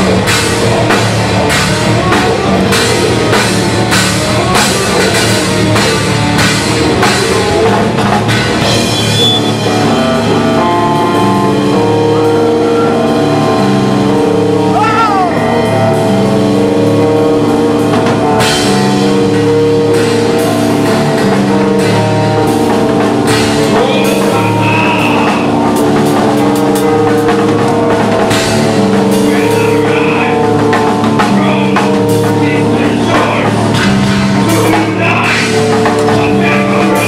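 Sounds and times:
distorted guitars and bass: 0.0s - 37.0s
loud drums: 0.0s - 37.0s
metal band playing live: 0.0s - 37.0s
guitar squeal: 8.7s - 16.2s.

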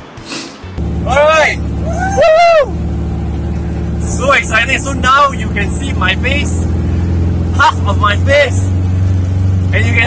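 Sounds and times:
buggy engine droning: 0.7s - 10.0s
man whooping: 1.3s - 2.8s.

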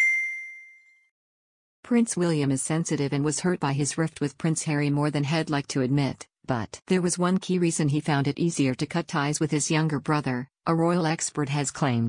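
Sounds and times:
bright bell-like ding: 0.0s - 1.1s.

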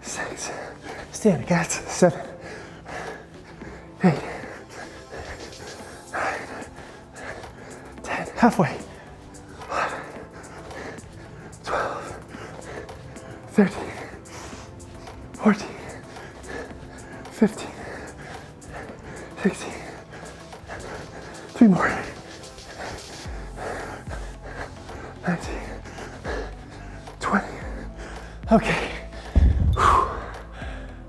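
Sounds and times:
background music: 0.0s - 31.0s.

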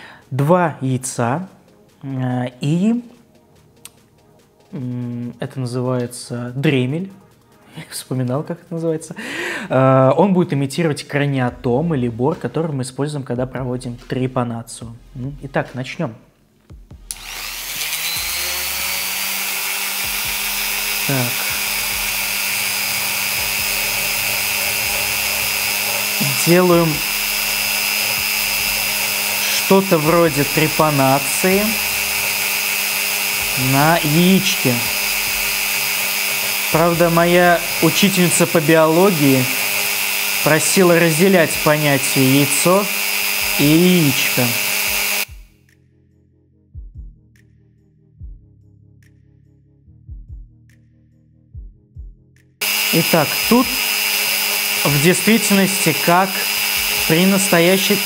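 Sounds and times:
faint background music: 0.0s - 19.2s, 20.1s - 35.8s, 36.5s - 39.7s, 40.4s - 58.0s
rotary tool whining: 17.1s - 45.3s, 52.6s - 58.0s
burr grinding eggshell: 17.2s - 45.3s, 52.6s - 58.0s.

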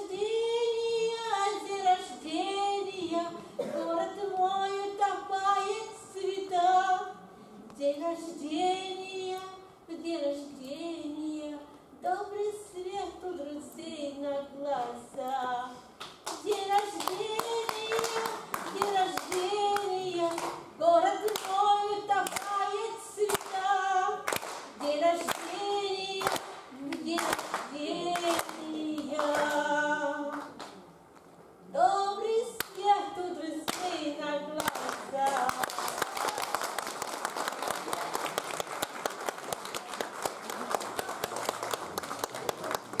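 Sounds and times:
woman singing unaccompanied: 0.0s - 7.2s, 7.8s - 30.6s, 31.7s - 36.0s
hand claps: 16.0s - 20.6s, 21.2s - 21.6s, 22.2s - 22.6s, 23.3s - 23.6s, 24.2s - 25.6s, 26.2s - 29.6s, 34.6s - 43.0s
audience applauding: 16.3s - 19.5s, 34.6s - 43.0s.

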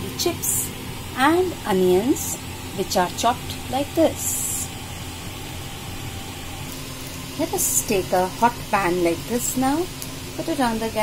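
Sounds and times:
room noise hum and hiss: 0.0s - 11.0s.

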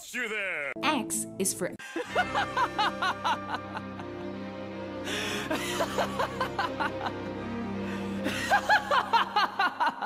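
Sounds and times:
background music: 0.2s - 10.0s
man laughing: 1.8s - 4.3s, 5.5s - 7.3s, 8.2s - 10.0s.

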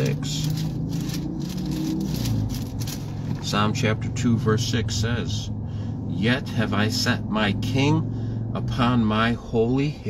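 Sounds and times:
book pages rustling: 0.0s - 3.5s
car cabin hum: 0.0s - 5.5s.

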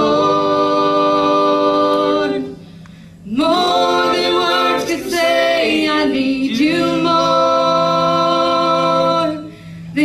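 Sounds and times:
voices singing in harmony: 0.0s - 10.0s.

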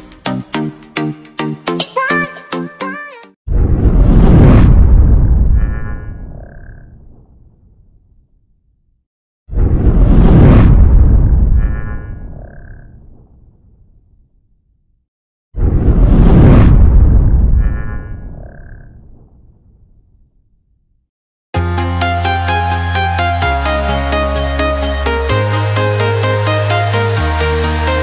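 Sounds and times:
low rumbling boom: 3.5s - 8.2s, 9.5s - 12.4s, 15.6s - 20.3s.

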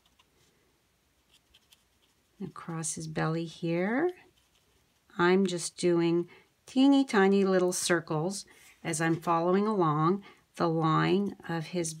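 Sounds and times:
marker scratching on card: 4.2s - 5.1s.

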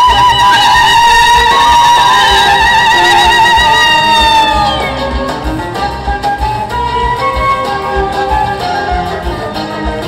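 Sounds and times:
bass guitar: 0.0s - 10.0s
folk band playing: 0.0s - 10.0s
keyboard: 0.0s - 10.0s
steady beat: 0.0s - 10.0s.

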